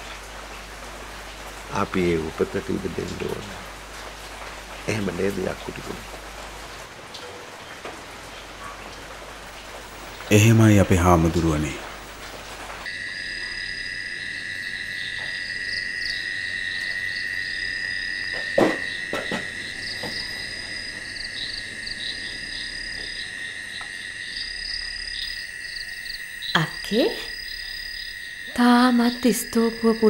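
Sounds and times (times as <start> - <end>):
insects droning: 0.0 - 30.0.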